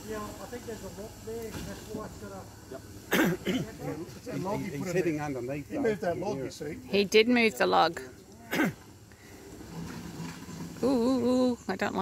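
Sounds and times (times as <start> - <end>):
distant engine hum: 0.0 - 12.0.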